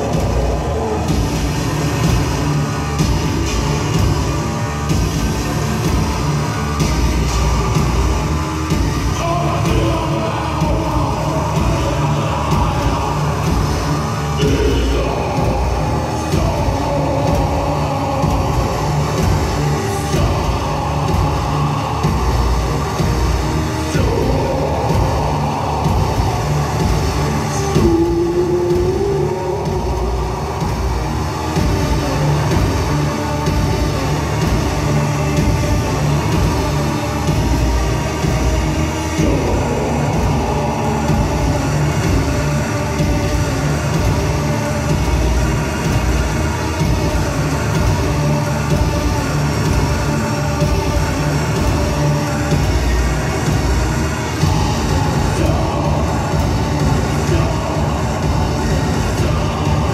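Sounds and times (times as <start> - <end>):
pulsing bass beat: 0.0 - 59.9.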